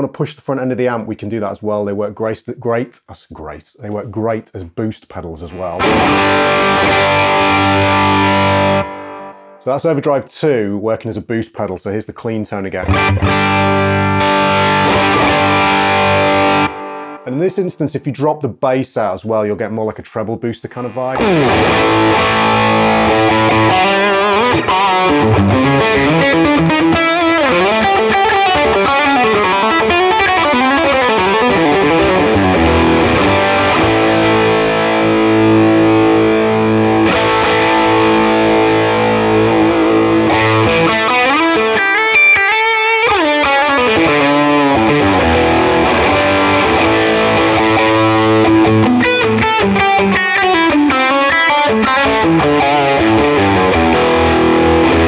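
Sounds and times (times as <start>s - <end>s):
overdriven electric guitar lead: 5.8s - 9.6s, 12.8s - 17.3s, 21.1s - 55.0s.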